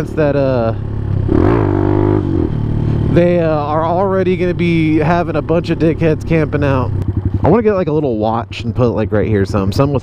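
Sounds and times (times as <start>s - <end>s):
motorcycle engine revving: 0.0s - 10.0s
riding noise: 0.0s - 10.0s.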